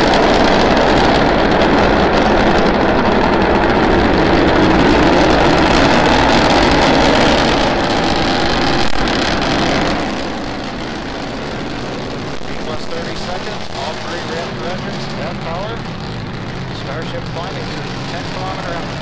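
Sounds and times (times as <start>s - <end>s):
rocket engines roaring: 0.0s - 19.0s.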